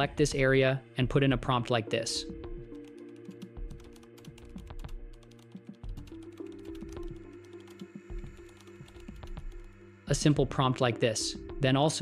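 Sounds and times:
background music: 0:00.0 - 0:12.0
computer keyboard typing: 0:02.5 - 0:09.8.

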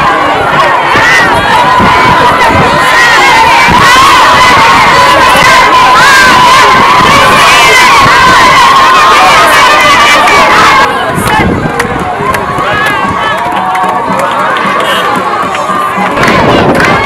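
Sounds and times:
crowd cheering and shouting: 0:00.0 - 0:17.0.

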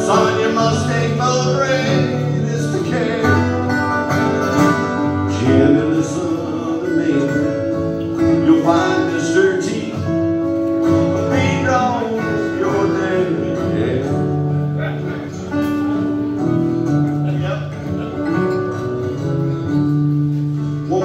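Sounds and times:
man singing: 0:00.0 - 0:15.7, 0:20.7 - 0:21.0
acoustic guitars playing: 0:00.0 - 0:21.0.

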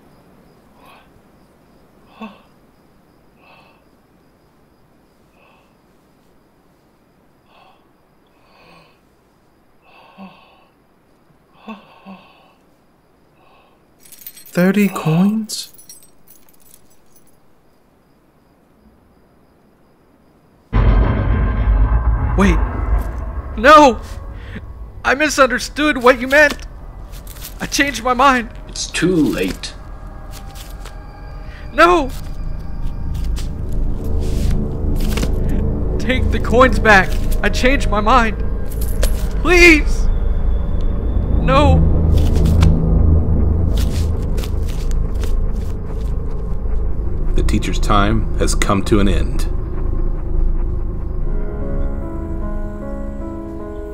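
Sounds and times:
crickets chirping: 0:00.0 - 0:53.9
loud deep rumble: 0:20.7 - 0:53.7.

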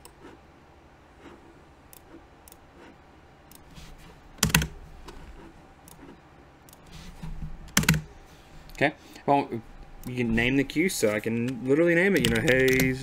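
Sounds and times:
keyboard typing: 0:04.4 - 0:04.8, 0:07.7 - 0:08.1, 0:11.0 - 0:13.0.

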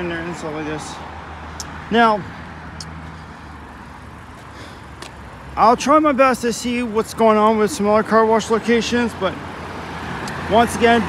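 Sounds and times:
car engine humming: 0:00.0 - 0:11.0
road traffic noise: 0:00.0 - 0:11.0.

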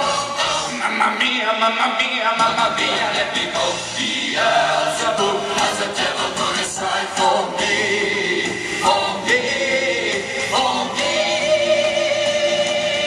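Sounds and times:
choir-like vocals: 0:00.0 - 0:13.0
musical accompaniment: 0:00.0 - 0:13.0
man singing into microphone: 0:00.6 - 0:03.6.

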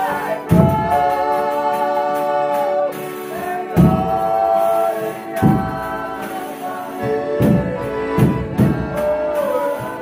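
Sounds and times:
accordion: 0:00.0 - 0:10.0
voices singing in chorus: 0:00.0 - 0:10.0.

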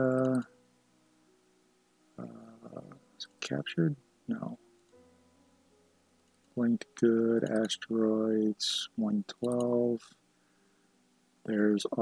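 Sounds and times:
person saying uh: 0:02.2 - 0:03.0.

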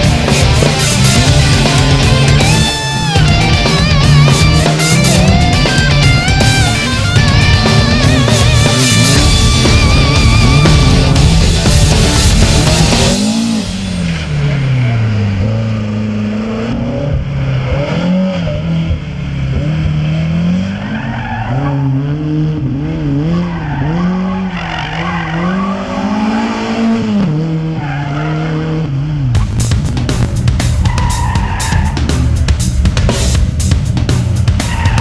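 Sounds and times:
racing car engine revving: 0:00.0 - 0:35.0.

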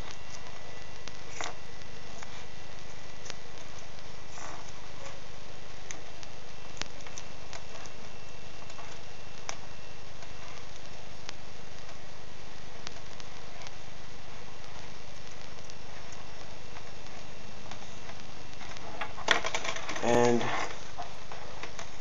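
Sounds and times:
steady electrical hum: 0:00.0 - 0:22.0
tape crackling and clicking: 0:00.0 - 0:22.0.

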